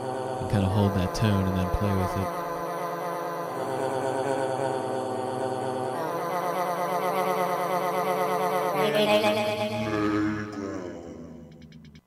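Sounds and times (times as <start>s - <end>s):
grainy synth drone: 0.0s - 11.9s.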